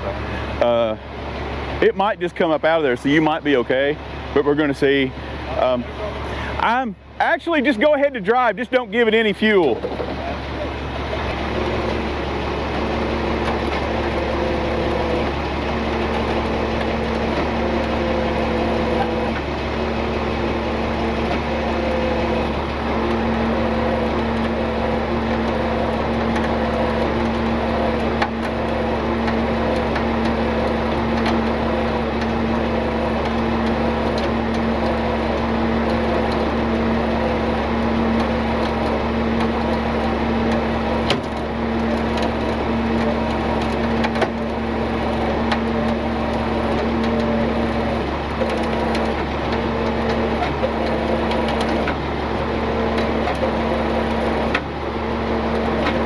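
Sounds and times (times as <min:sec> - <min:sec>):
truck engine driving winch: 0:00.0 - 0:56.0.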